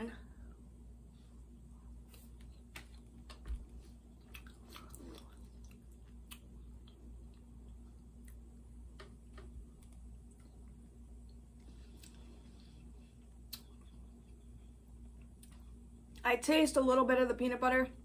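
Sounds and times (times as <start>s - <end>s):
chewing with mouth closed: 4.0s - 8.4s.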